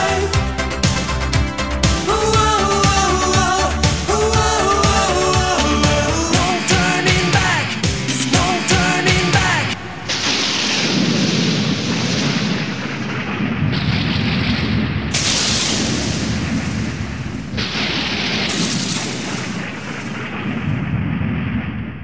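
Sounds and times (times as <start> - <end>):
song music: 0.0 - 10.1
long rumbling explosion noise: 6.3 - 22.0
hiss: 15.2 - 16.8.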